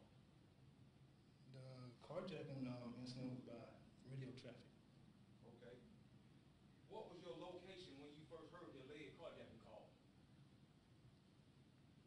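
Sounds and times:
man speaking into a microphone: 0:01.5 - 0:04.7, 0:06.9 - 0:10.0.

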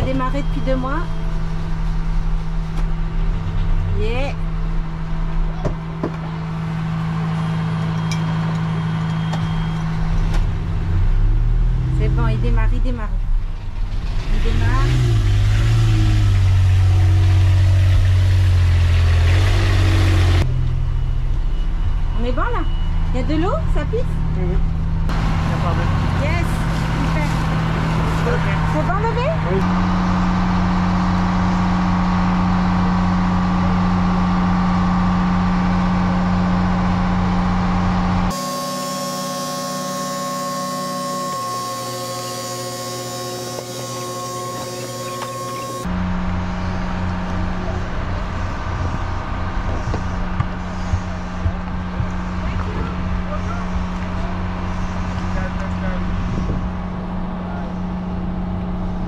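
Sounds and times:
mechanical hum with whine: 0:00.0 - 0:13.8, 0:20.4 - 0:59.0
engine humming: 0:00.0 - 0:59.0.

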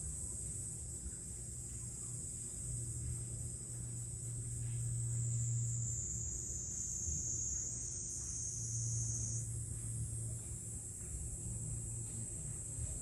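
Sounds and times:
faint low hum: 0:00.0 - 0:13.0
high-pitched insect chorus: 0:00.0 - 0:13.0.

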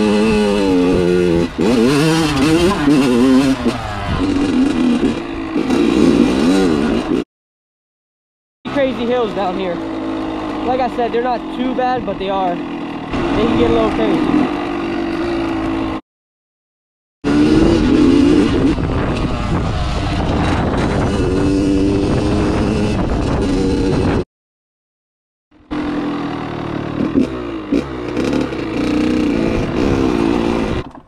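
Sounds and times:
dirt bike engine revving: 0:00.0 - 0:07.2, 0:08.7 - 0:16.0, 0:17.2 - 0:24.2, 0:25.6 - 0:31.0.

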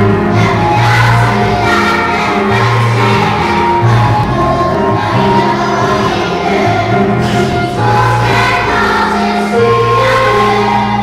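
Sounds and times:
children's choir singing: 0:00.0 - 0:11.0
low held accompaniment notes: 0:00.0 - 0:11.0.

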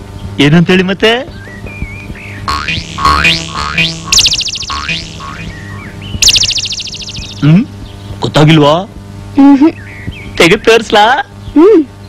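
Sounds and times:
steady low hum: 0:00.0 - 0:10.4
rapid buzzing high trill: 0:02.5 - 0:07.5
whistle-like rising glides: 0:03.0 - 0:07.4.

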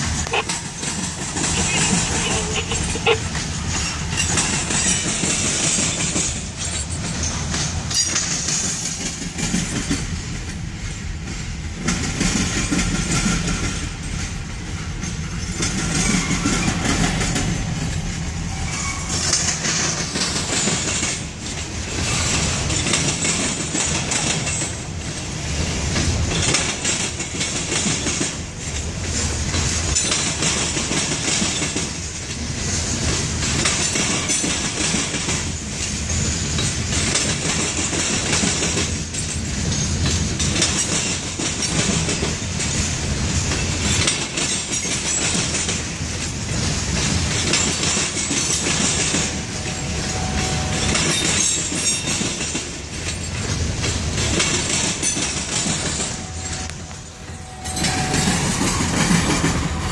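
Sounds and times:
freight train rumble: 0:00.0 - 0:59.9
train wheels clacking over rail joints: 0:00.0 - 0:59.9.

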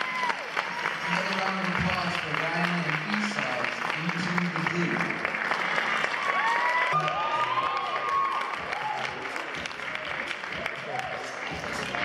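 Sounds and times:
whooping cheers: 0:00.0 - 0:01.4, 0:06.1 - 0:09.5, 0:10.5 - 0:11.4
audience applauding: 0:00.0 - 0:12.0.

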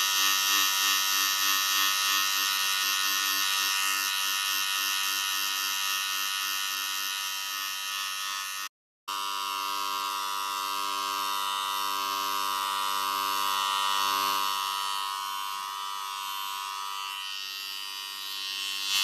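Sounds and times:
electric hair clippers buzzing: 0:00.0 - 0:19.0.

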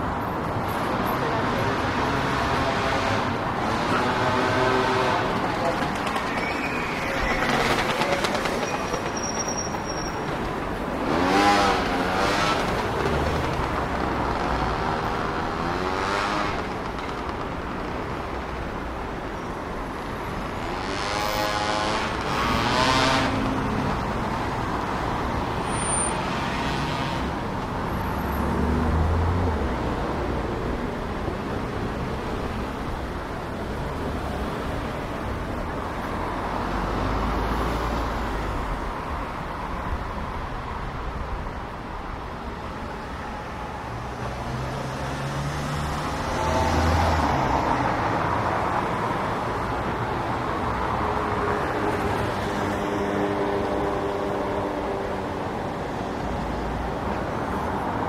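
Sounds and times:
louder vehicles passing: 0:00.0 - 0:58.0
traffic rumble on cobbles: 0:00.0 - 0:58.0.

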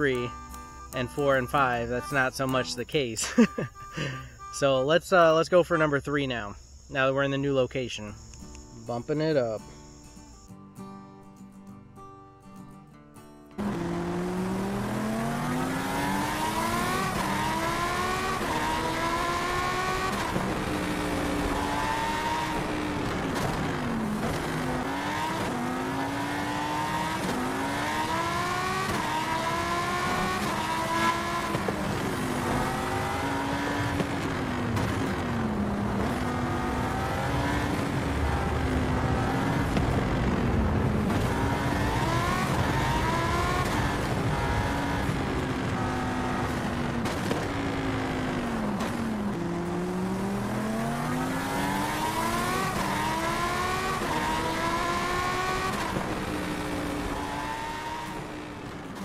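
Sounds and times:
wind rushing on microphone: 0:39.5 - 0:45.8.

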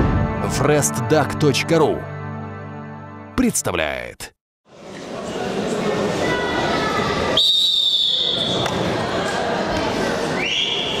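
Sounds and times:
crowd chatter: 0:04.7 - 0:11.0
referee's whistle: 0:07.4 - 0:08.7, 0:10.4 - 0:11.0.

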